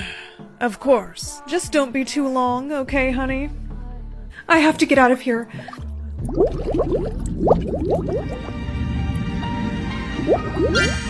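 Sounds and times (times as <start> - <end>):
background music with low bass: 0.0 - 11.0
watery bloop sound effects: 5.6 - 8.7, 10.2 - 11.0.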